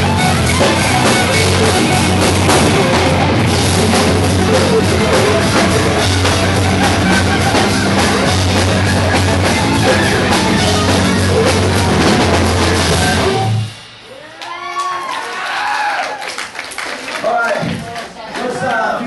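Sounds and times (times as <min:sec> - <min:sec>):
live rock band playing: 0:00.0 - 0:14.9
crowd shouting and cheering: 0:00.0 - 0:19.0.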